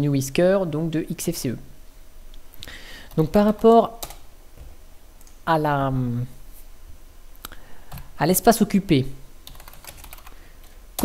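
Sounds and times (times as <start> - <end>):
computer keyboard typing: 3.1 - 4.2, 9.5 - 10.4.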